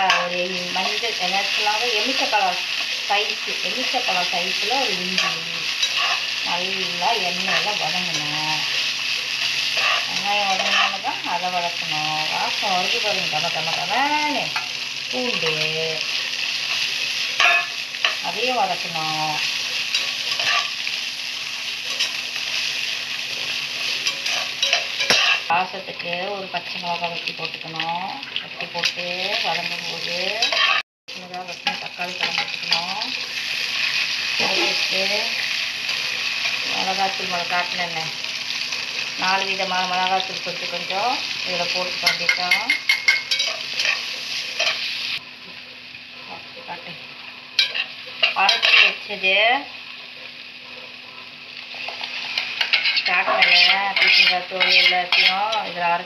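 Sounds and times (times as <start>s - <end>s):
vegetables sizzling in oil: 0.0s - 56.0s
metal tongs stirring: 5.0s - 6.4s, 9.7s - 11.1s, 19.9s - 20.7s, 23.8s - 25.5s, 30.4s - 33.0s, 42.0s - 44.8s, 47.6s - 49.0s, 51.8s - 55.6s.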